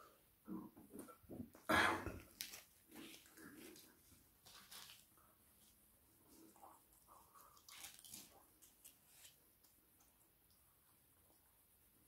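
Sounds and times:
person chewing food: 0:06.3 - 0:09.8.

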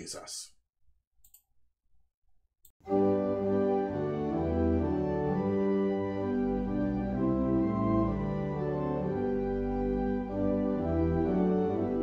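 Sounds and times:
organ chords: 0:02.8 - 0:12.0.

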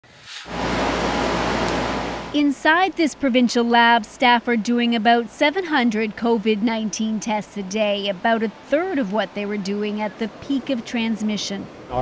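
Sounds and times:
rushing ventilation air: 0:00.1 - 0:03.4.

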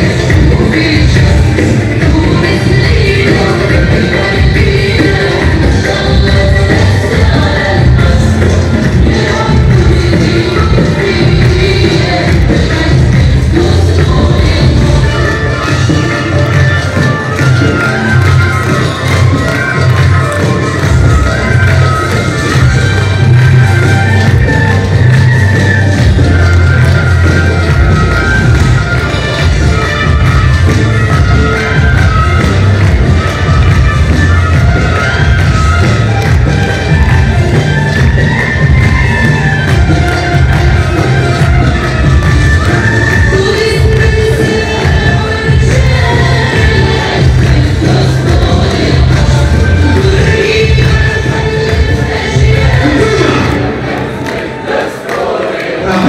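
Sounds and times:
singing over heavy bass beat: 0:00.0 - 0:56.0.

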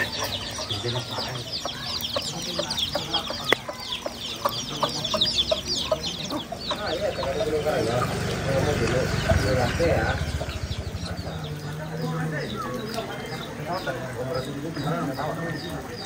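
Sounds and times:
chicks peeping: 0:00.0 - 0:16.0
hen clucking: 0:00.0 - 0:16.0.

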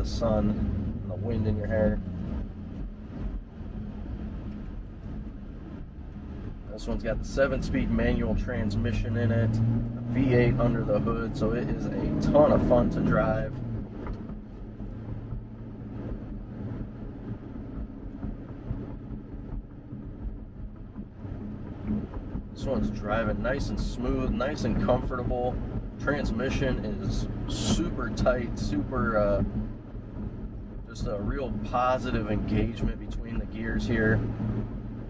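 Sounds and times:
car engine rumble from cabin: 0:00.0 - 0:35.0
road noise: 0:00.0 - 0:35.0.

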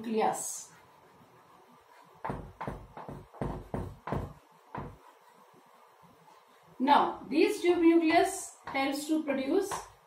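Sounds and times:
chalk knocking on chalkboard: 0:02.0 - 0:05.4, 0:08.0 - 0:10.0.

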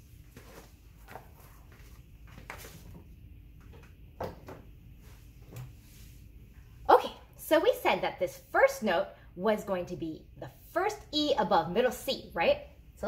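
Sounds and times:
plastic binder rustling: 0:00.2 - 0:03.1.

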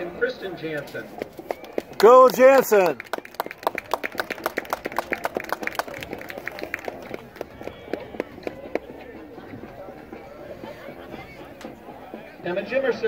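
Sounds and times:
faint chatter: 0:00.0 - 0:13.0
people clapping: 0:01.2 - 0:08.9.

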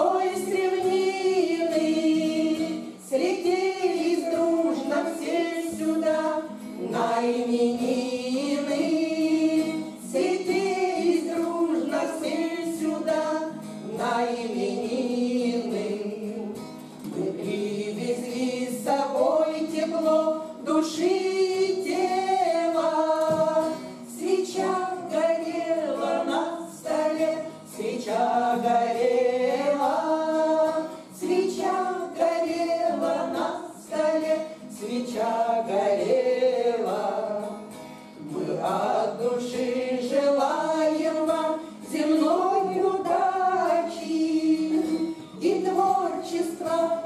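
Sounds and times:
strummed acoustic guitar: 0:00.0 - 0:47.0
women singing in unison: 0:00.0 - 0:47.0.

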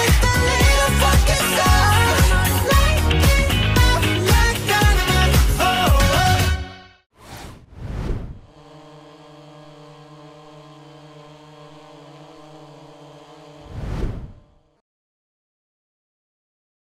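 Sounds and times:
whooshes: 0:07.2 - 0:09.3, 0:13.6 - 0:14.6
drone propeller hum: 0:07.9 - 0:14.8.

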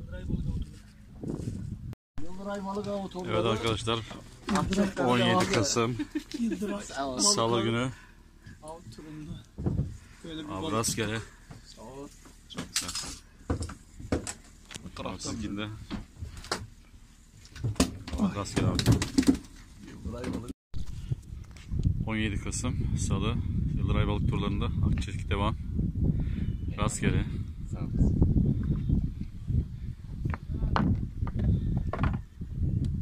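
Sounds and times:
people talking: 0:02.4 - 0:07.9.

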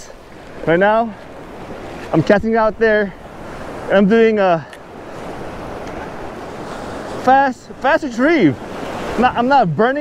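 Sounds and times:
surf washing over sand: 0:00.0 - 0:10.0.

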